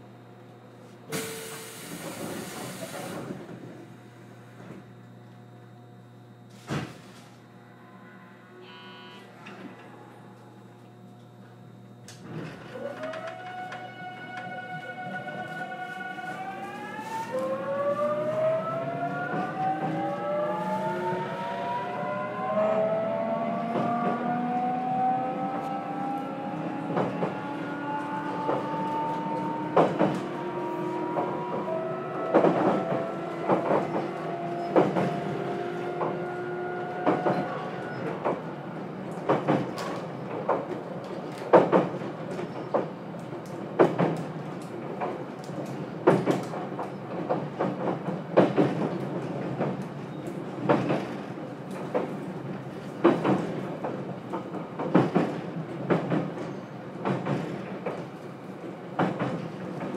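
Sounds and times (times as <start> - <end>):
electric train motors whining: 7.3 - 39.1.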